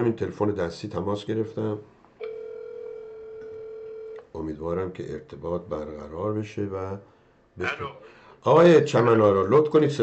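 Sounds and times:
telephone ringback tone: 0:02.2 - 0:04.2.

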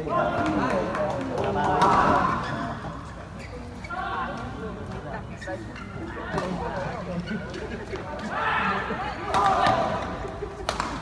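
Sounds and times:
background chatter: 0:00.0 - 0:11.0
loud call in echoing hall: 0:08.2 - 0:11.0.

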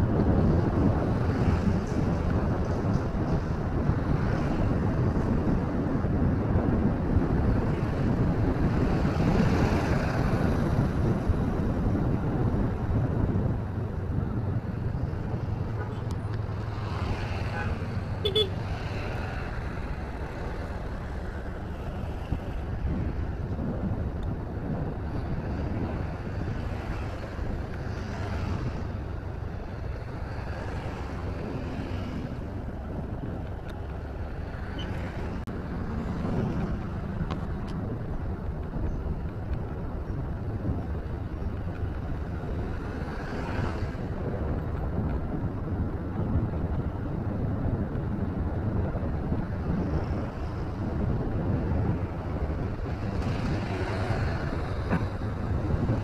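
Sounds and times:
motorcycle engine and road noise: 0:00.0 - 0:56.0
vehicles passing: 0:00.0 - 0:56.0
wind rush: 0:00.0 - 0:56.0.

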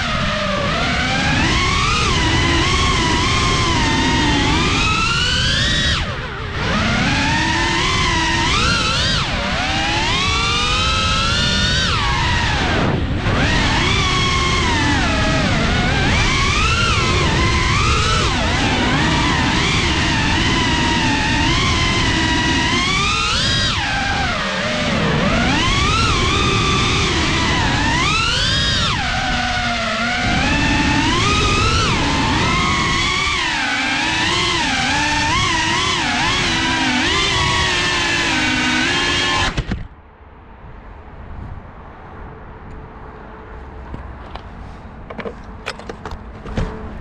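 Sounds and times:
drone motors whining: 0:00.0 - 0:40.0.

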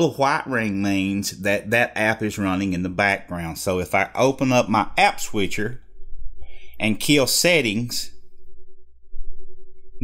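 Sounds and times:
low hum: 0:02.6 - 0:10.0.

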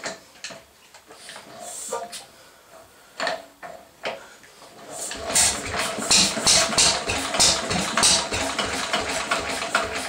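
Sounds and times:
stationary engine running roughly: 0:05.2 - 0:10.0
engine backfire pops: 0:05.3 - 0:09.1.

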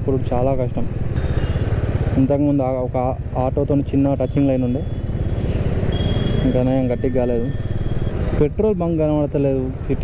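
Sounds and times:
motorcycle engine running: 0:00.0 - 0:10.0
thin steady high tone: 0:04.6 - 0:08.3.

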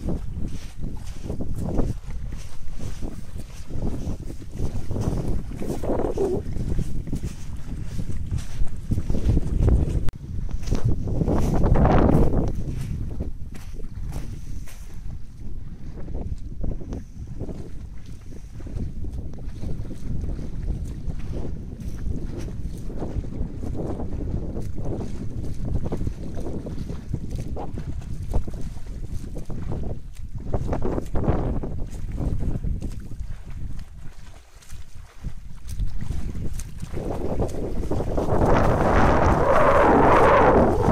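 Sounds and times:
wind rumble on microphone: 0:00.0 - 0:40.9.

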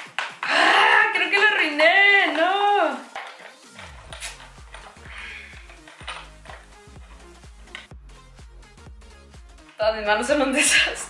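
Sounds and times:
music with steady beat: 0:00.0 - 0:11.0.

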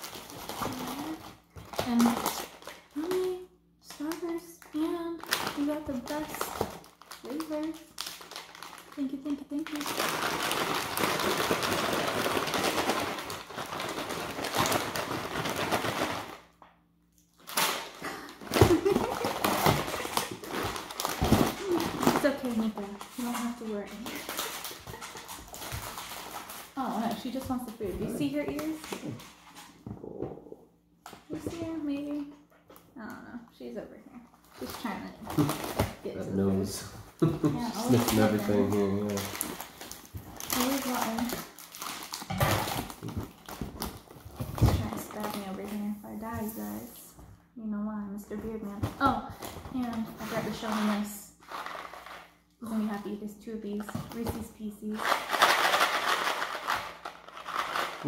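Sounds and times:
packaging rustling: 0:00.0 - 0:03.4, 0:05.2 - 0:16.5, 0:17.4 - 0:29.8, 0:37.7 - 0:46.8, 0:49.4 - 0:52.4, 0:53.8 - 0:58.0.

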